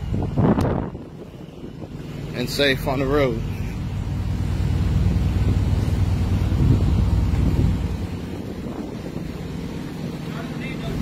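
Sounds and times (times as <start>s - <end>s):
low steady rumble: 0.0s - 11.0s
wind buffeting microphone: 0.0s - 11.0s.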